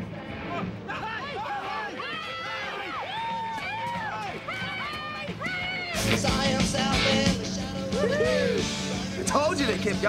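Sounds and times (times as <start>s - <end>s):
people shouting and cheering: 0.2s - 10.0s.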